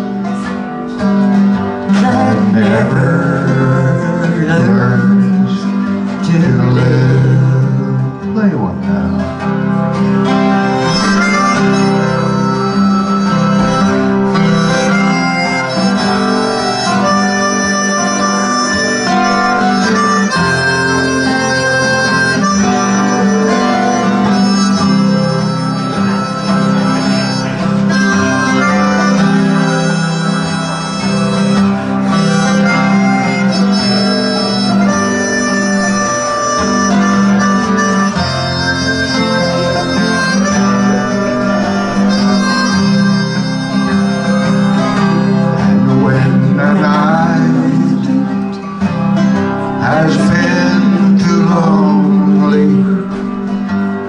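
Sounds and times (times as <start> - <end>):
acoustic guitar accompaniment: 0.0 - 54.0
harmonica solo: 0.0 - 54.0.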